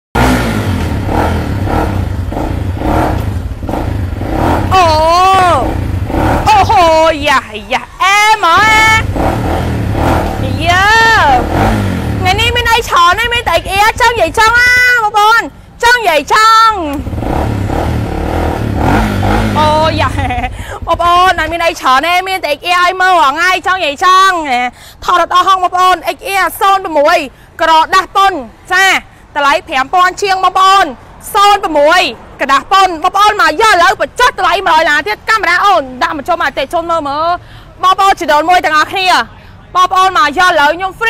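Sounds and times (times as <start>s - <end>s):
motorcycle engine rumbling: 0.2s - 22.7s
woman exclaiming: 4.7s - 5.8s, 6.4s - 9.1s, 10.5s - 11.5s, 12.3s - 16.9s, 19.5s - 21.5s.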